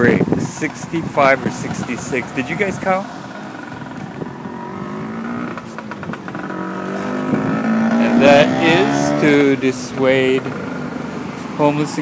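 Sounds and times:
vehicle engine approaching: 0.0 - 12.0.

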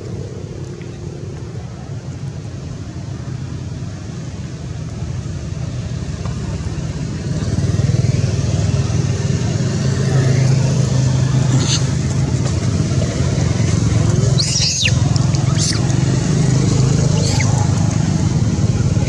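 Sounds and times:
motor engine humming: 8.7 - 19.0.

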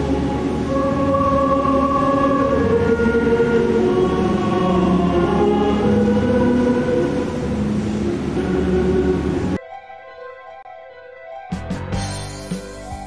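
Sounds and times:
choir singing held notes: 0.0 - 9.6.

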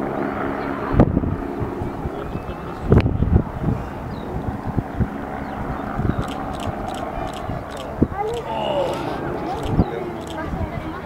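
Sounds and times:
distant helicopter rumble: 0.0 - 11.0
wind on microphone: 0.0 - 11.0.

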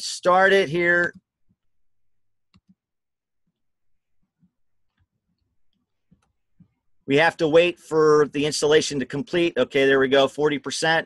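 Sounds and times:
computer mouse clicks: 2.5 - 2.8.

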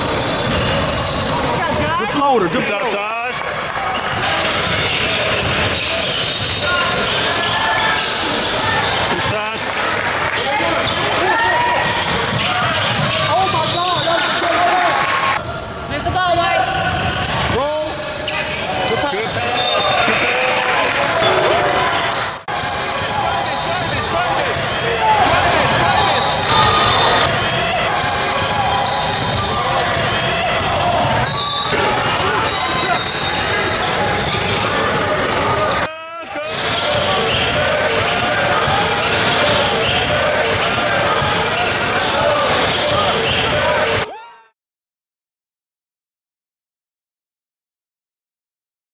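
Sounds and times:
indistinct voices: 10.3 - 44.5.

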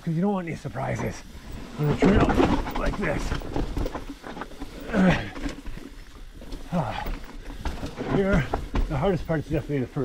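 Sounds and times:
bike rolling on rough trail: 0.2 - 10.0
person grunting with effort: 4.8 - 5.4, 6.7 - 7.1.

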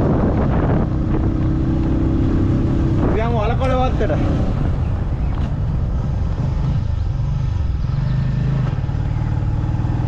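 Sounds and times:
wind on microphone: 0.0 - 8.9
motorcycle engine rumble: 0.0 - 10.0.

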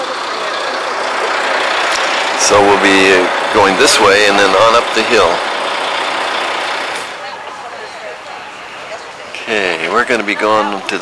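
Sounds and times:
outdoor street noise: 0.0 - 11.0.

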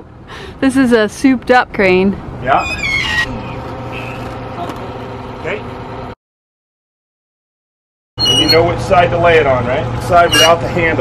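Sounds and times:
engine hum: 0.0 - 6.2, 8.2 - 11.0.

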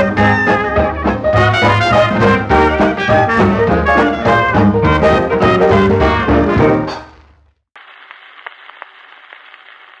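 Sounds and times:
record clicks and crackles: 7.0 - 10.0
record surface hiss: 7.0 - 10.0.

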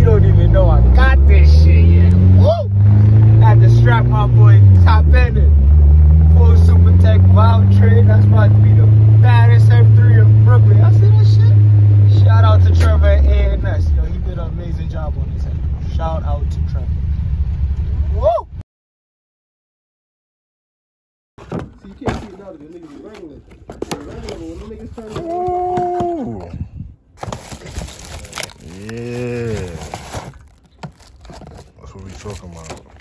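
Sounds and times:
car engine drone from inside: 0.0 - 18.4.

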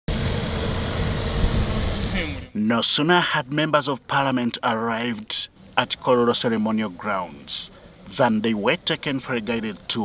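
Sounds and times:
tyre noise on wet road: 0.1 - 2.5
low engine rumble: 0.1 - 2.6.

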